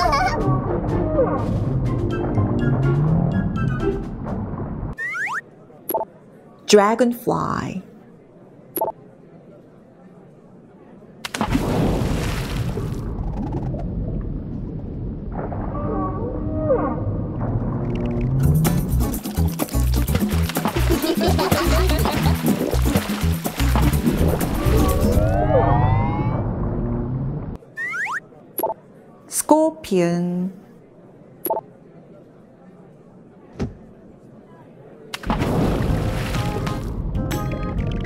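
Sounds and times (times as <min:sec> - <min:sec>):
loud splash into water: 0:11.3 - 0:13.0, 0:35.2 - 0:37.0
whale calls: 0:15.4 - 0:17.4
rushing burst of bubbles: 0:35.3 - 0:37.0.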